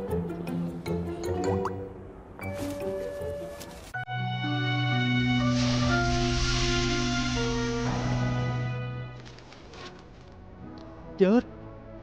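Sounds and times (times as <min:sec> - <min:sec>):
background score music: 0:00.0 - 0:12.0.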